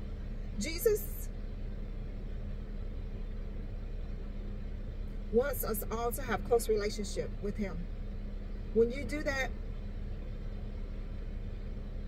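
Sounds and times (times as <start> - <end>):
car idling hum: 0.0 - 12.0
faint constant tone: 0.0 - 12.0.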